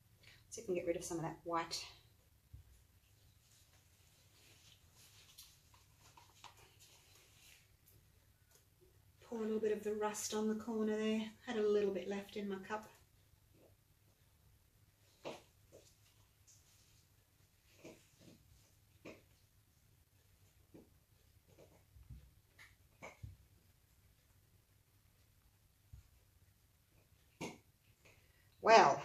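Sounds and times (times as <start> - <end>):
faint clicks and rustles: 1.9 - 9.3, 12.5 - 28.6.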